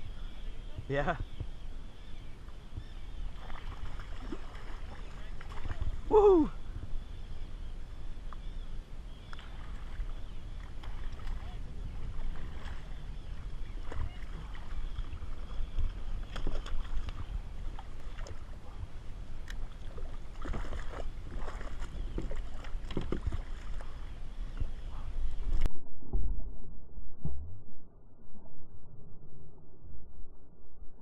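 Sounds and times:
water lapping at kayak: 0.0s - 25.7s
wind rumbling on microphone: 0.0s - 31.0s
fish splashing: 3.4s - 6.2s, 19.5s - 24.0s.

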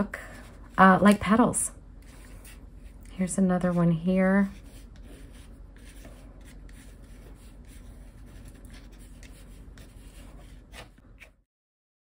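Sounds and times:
gel pen scratching on paper: 2.0s - 3.0s, 4.4s - 11.4s
hand rubbing on paper: 2.0s - 11.4s.

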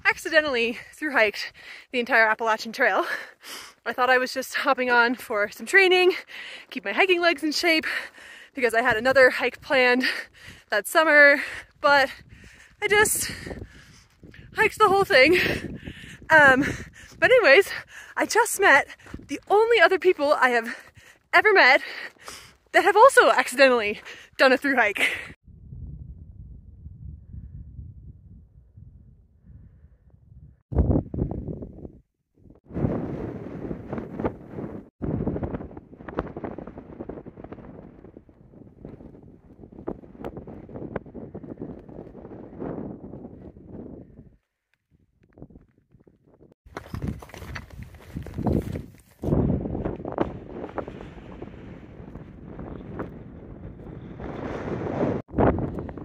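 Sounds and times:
wind buffeting microphone: 6.9s - 21.1s, 25.0s - 56.0s.

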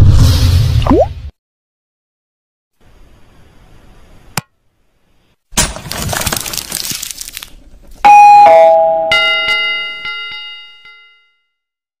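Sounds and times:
two-note ding-dong chime: 8.1s - 11.6s.

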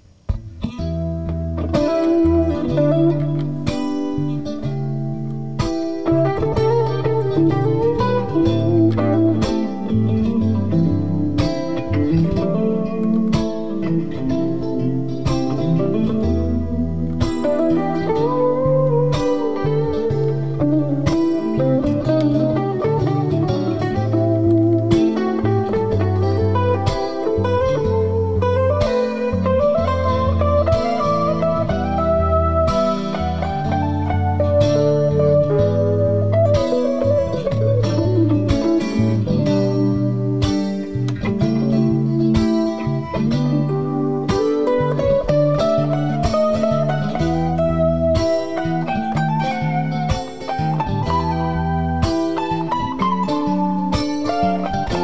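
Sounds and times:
electric guitar blues solo: 0.0s - 55.0s
rhythm guitar backing track: 0.0s - 55.0s.

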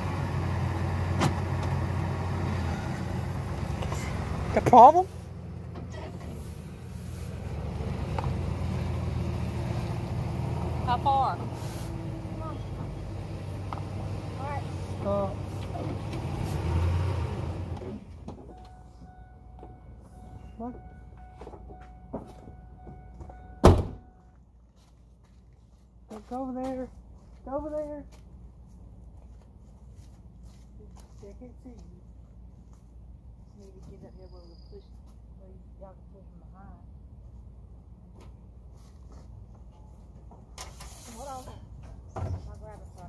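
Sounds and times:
faint steady tone: 18.5s - 24.4s
truck door shutting: 23.6s - 24.1s.

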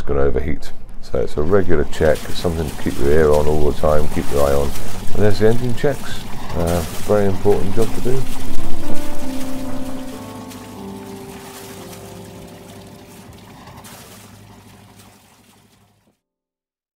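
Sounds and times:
held music chords: 0.8s - 14.6s
water gushing from exhaust outlet: 1.0s - 16.1s.

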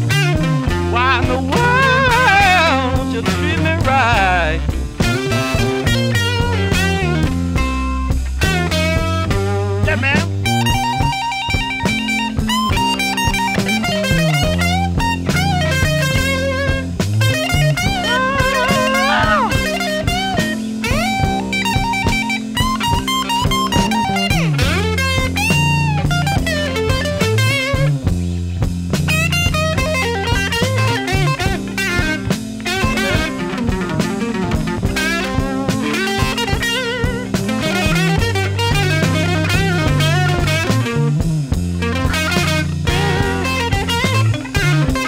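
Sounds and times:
bass and rhythm backing: 0.0s - 45.0s
electric blues guitar lead: 0.0s - 45.0s.

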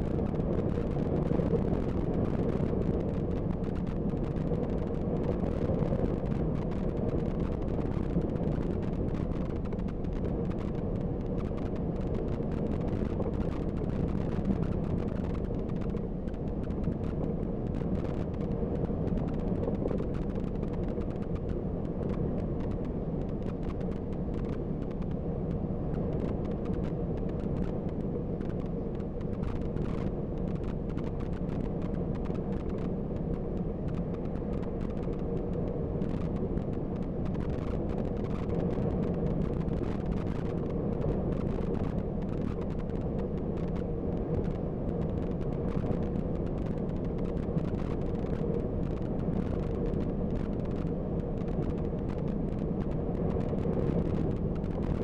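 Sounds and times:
faint steady hum: 0.0s - 55.0s
bus engine and tyre rumble: 0.1s - 55.0s.

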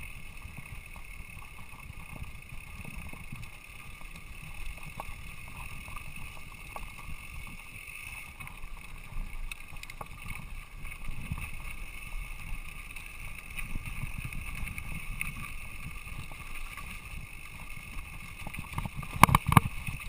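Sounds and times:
bike clicks and rattles: 0.0s - 20.0s
bike tyres rolling on dirt: 0.0s - 20.0s
wind over microphone: 0.0s - 20.0s.

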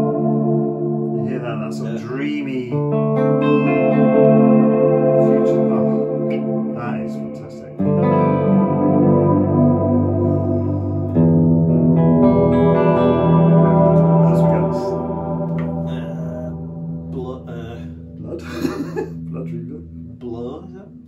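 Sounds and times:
electric guitar chords with reverb: 0.0s - 21.0s.

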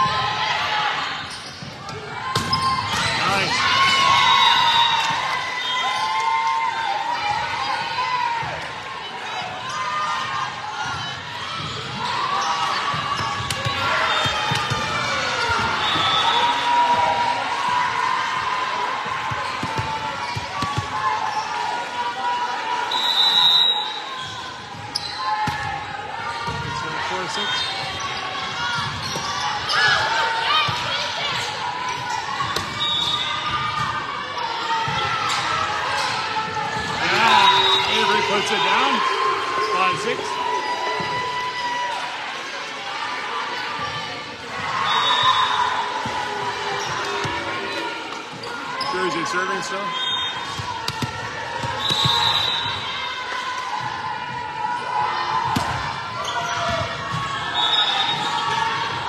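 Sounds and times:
players and spectators shouting: 0.0s - 59.0s.

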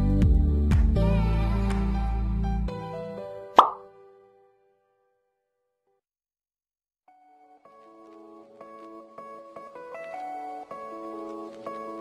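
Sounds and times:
background music: 0.0s - 4.7s, 7.1s - 12.0s
sharp pop sound effect: 3.6s - 3.9s.

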